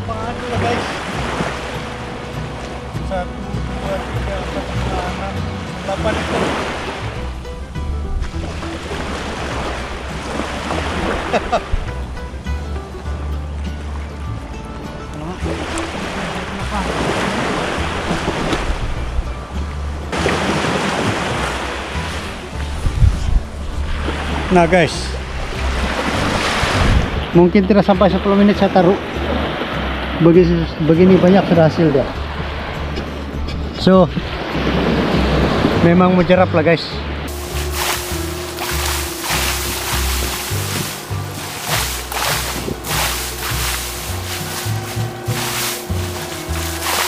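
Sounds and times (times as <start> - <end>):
small waves washing up: 0.0 - 12.0, 15.3 - 27.4, 34.2 - 35.9, 37.0 - 47.0
background music: 0.0 - 47.0
wind rumbling on microphone: 15.1 - 27.4, 32.0 - 35.9, 37.2 - 47.0.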